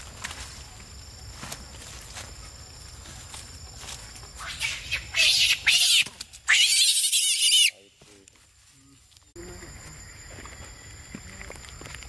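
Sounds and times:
monkey screaming: 4.4 - 7.9.

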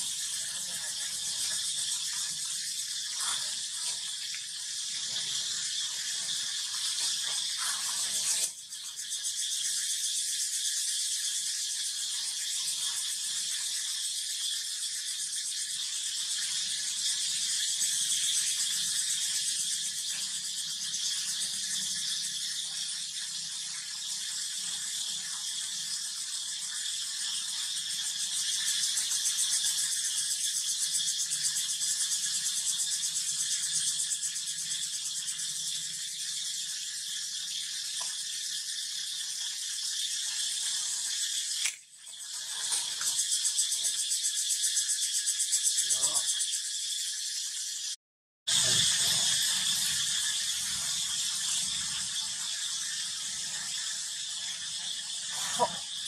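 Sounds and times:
insects buzzing: 0.0 - 56.0.

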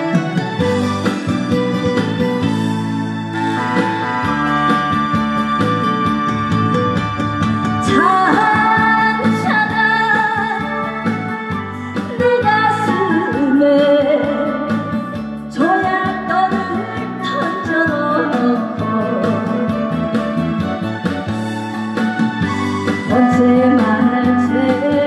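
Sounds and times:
keyboard-led backing music: 0.0 - 25.0
woman singing into microphone: 7.8 - 20.2, 23.0 - 25.0.

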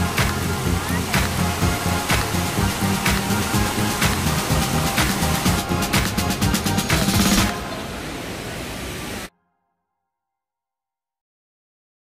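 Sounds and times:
waterfall rushing: 0.0 - 9.3.

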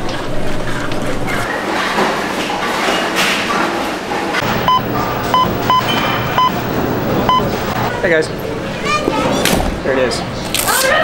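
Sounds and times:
keypad beeps: 4.4 - 7.9.

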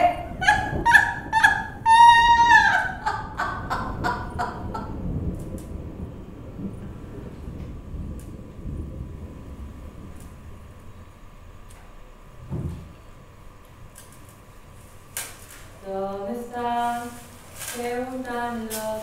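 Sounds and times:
woman's high-pitched laughing cry: 0.0 - 4.8.

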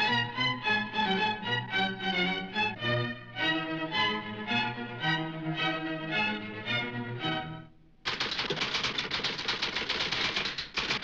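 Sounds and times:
typewriter keystrokes clacking: 8.1 - 11.0.

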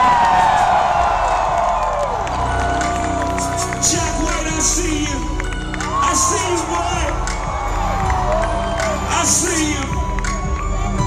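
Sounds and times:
crowd cheering and screaming: 0.0 - 11.0
loud bass-heavy music: 0.0 - 11.0.

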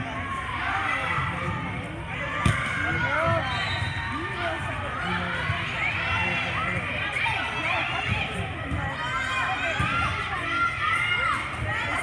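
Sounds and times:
crowd shouting and chattering: 0.0 - 12.0.

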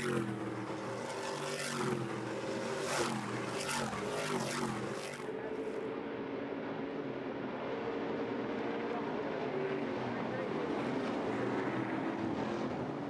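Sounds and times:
racing truck engines: 0.0 - 13.0.

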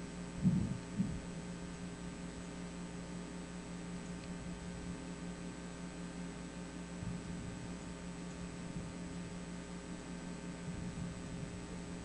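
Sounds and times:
steady low hum: 0.0 - 12.0
dull low thumps: 0.4 - 1.4.

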